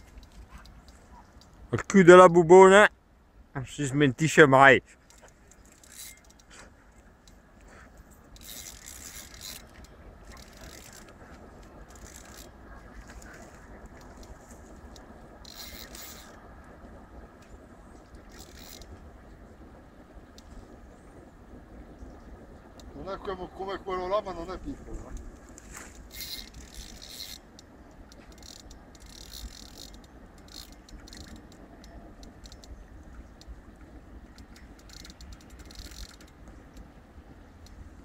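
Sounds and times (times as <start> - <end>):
low steady rumble: 2.9 - 38.0
faint scraping and rustling: 4.8 - 16.5, 22.9 - 36.9.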